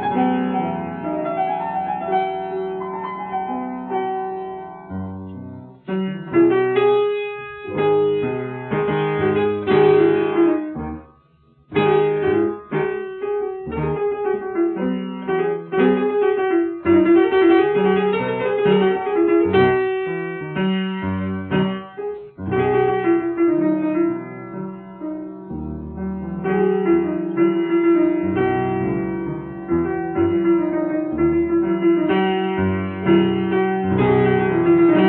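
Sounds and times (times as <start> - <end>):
solo piano quick repeated notes: 0.0 - 35.0.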